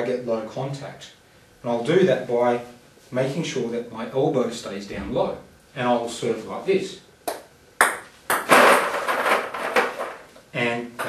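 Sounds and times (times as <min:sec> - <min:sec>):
table tennis ball clatter: 0:07.8 - 0:10.3.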